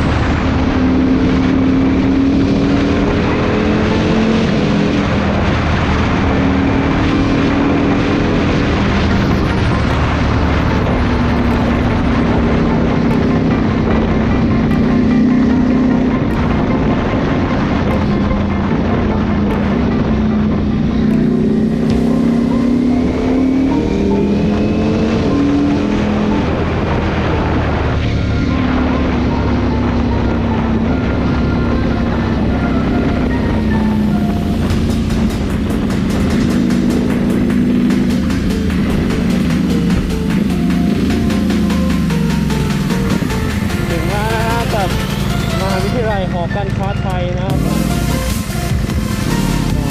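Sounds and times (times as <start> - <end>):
motorcycle engine: 0.0 - 49.9
wind and road rush: 0.0 - 49.9.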